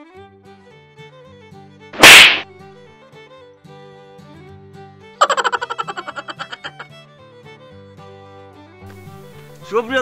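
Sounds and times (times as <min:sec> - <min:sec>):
light background music: 0:00.1 - 0:10.0
loud comic whack: 0:02.0 - 0:02.5.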